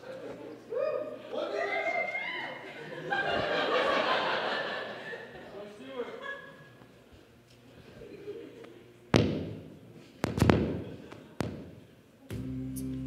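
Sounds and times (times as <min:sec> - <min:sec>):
music with held chords: 0:12.3 - 0:13.0.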